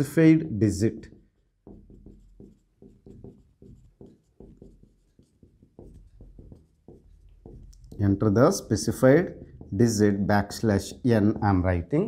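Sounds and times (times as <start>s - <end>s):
marker writing on whiteboard: 0.0s - 12.0s.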